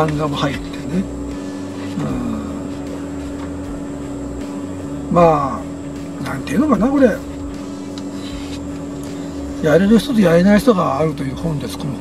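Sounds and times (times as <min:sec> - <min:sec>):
car cabin mechanical hum: 0:00.0 - 0:12.0
constant pitched tone: 0:00.0 - 0:12.0.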